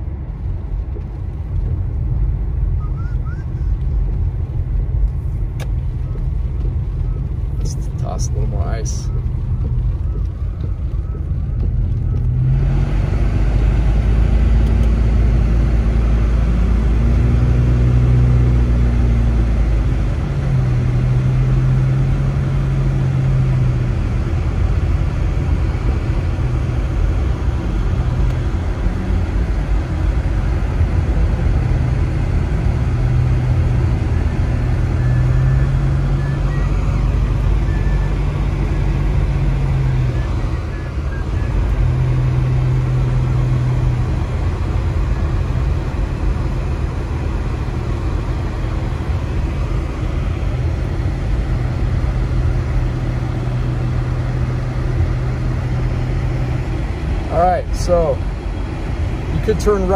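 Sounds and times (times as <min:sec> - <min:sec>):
car engine and tyres rumble: 0:00.0 - 0:59.9.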